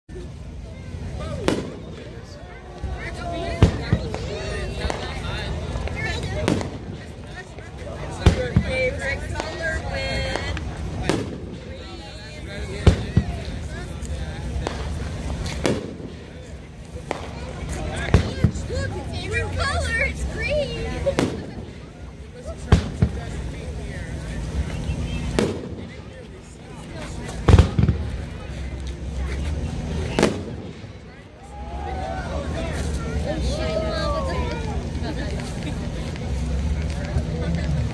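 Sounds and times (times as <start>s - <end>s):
low background rumble: 0.1s - 37.9s
firework bang: 1.4s - 2.3s, 3.5s - 5.2s, 5.8s - 7.3s, 8.1s - 11.9s, 12.7s - 13.6s, 14.6s - 18.7s, 21.0s - 21.9s, 22.6s - 23.5s, 25.2s - 26.2s, 27.4s - 28.2s, 30.0s - 31.1s.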